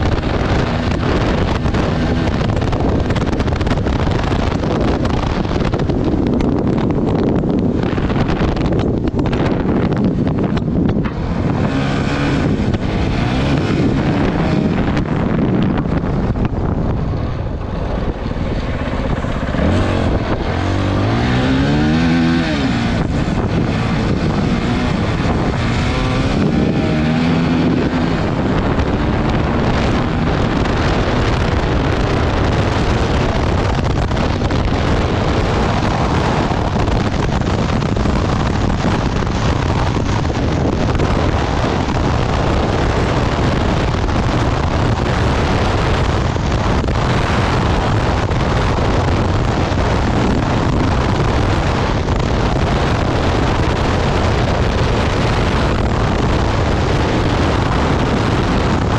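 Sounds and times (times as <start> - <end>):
motorcycle engine revving: 0.0 - 58.9
wind on microphone: 0.0 - 58.9.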